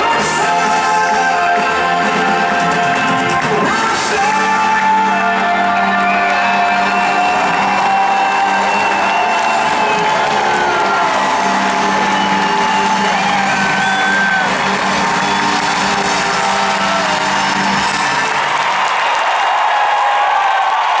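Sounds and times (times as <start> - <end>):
live rock band music: 0.0 - 18.7
arena crowd cheering: 0.0 - 21.0.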